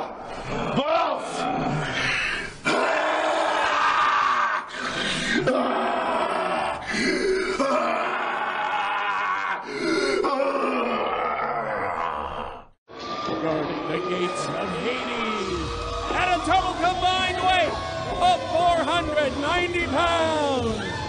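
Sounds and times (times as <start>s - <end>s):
men growling and snarling: 0.0s - 12.8s.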